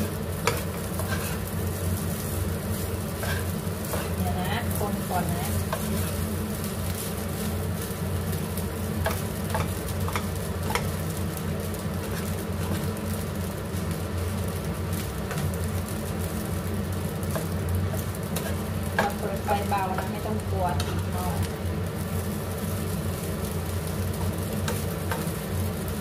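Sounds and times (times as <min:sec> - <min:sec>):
spatula scraping a pan: 0:00.0 - 0:01.8, 0:02.7 - 0:04.8, 0:05.6 - 0:06.3, 0:09.0 - 0:11.0, 0:12.0 - 0:13.0, 0:17.2 - 0:19.2, 0:24.1 - 0:25.5
fried rice sizzling in a pan: 0:00.0 - 0:26.0
steady low hum: 0:00.0 - 0:26.0.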